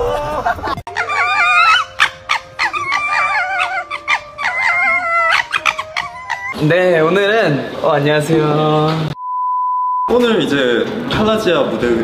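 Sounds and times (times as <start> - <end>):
foxes screeching: 0.9 - 6.6.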